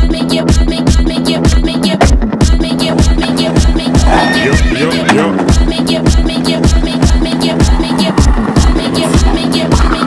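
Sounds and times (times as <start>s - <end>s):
music with steady beat: 0.0s - 10.0s
horse whinny in music: 3.8s - 5.6s.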